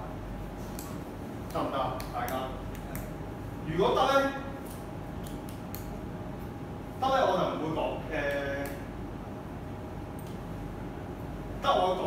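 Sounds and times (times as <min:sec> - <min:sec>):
faint steady hum: 0:00.0 - 0:12.0.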